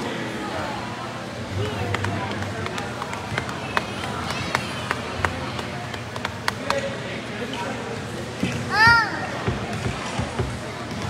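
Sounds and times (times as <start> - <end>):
people talking in gymnasium: 0.0 - 11.0.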